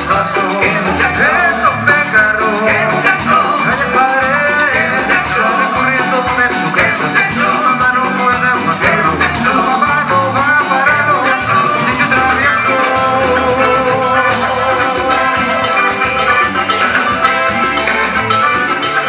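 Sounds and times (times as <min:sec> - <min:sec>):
salsa band playing through speakers: 0:00.0 - 0:19.0.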